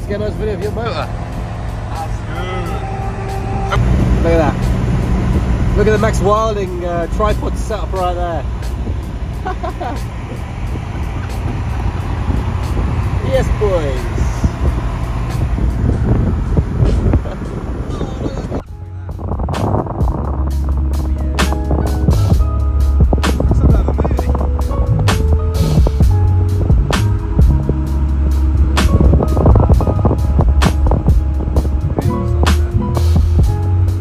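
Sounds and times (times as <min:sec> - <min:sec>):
music with heavy bass: 0:00.0 - 0:34.0
road and wind noise: 0:00.0 - 0:34.0.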